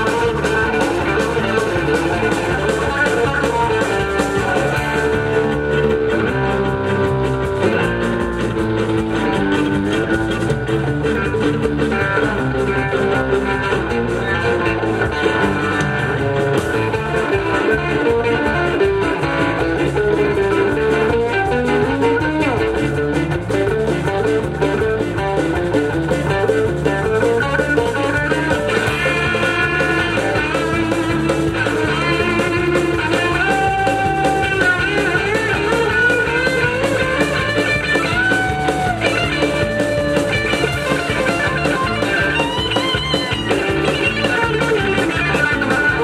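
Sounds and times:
electric guitar picking quick runs: 0:00.0 - 0:46.0
live rock band playing: 0:00.0 - 0:46.0.

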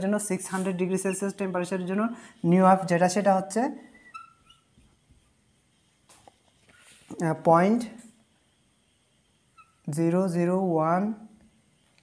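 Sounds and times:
marker squeaking on whiteboard: 0:03.8 - 0:07.1, 0:09.5 - 0:09.9.

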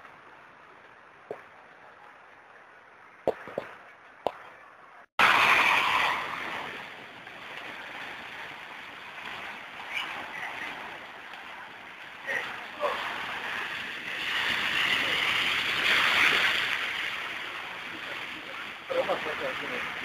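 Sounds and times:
floodwater rushing: 0:05.2 - 0:20.0.

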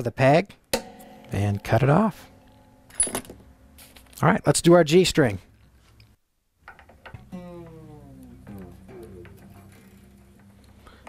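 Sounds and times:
guitar string sliding down in pitch: 0:07.1 - 0:11.0.

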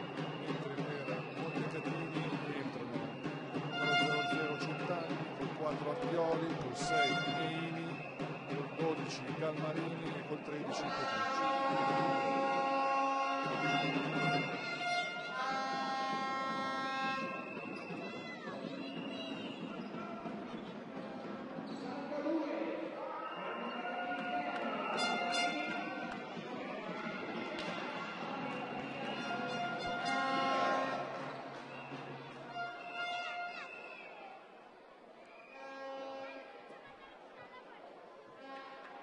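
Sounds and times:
music over hall speakers: 0:00.0 - 0:12.8, 0:13.4 - 0:17.9, 0:23.6 - 0:27.2, 0:27.8 - 0:33.3
crowd voices echoing: 0:00.0 - 0:39.0.

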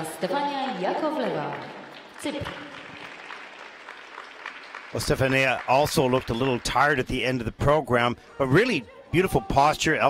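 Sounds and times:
audience applauding: 0:00.0 - 0:07.5.

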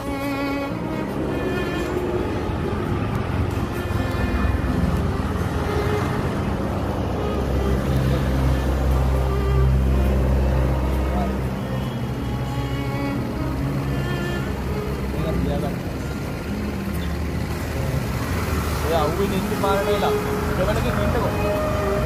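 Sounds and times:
background music: 0:00.0 - 0:22.0
road traffic: 0:00.0 - 0:22.0
vehicle engine droning: 0:00.0 - 0:22.0.

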